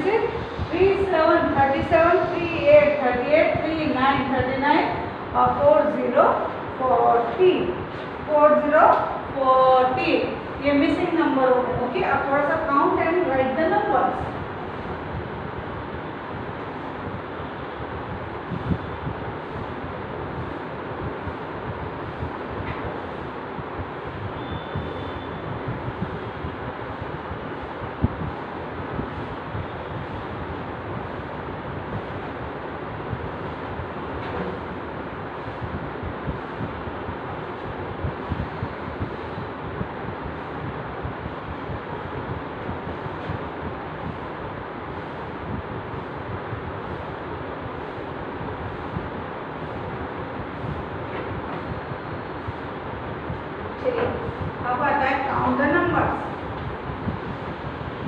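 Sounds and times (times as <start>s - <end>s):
rushing background noise: 0.0s - 58.0s.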